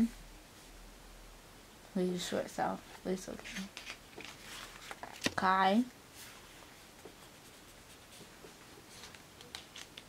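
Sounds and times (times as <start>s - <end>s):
fingers rustling on glossy paper: 6.2s - 10.0s.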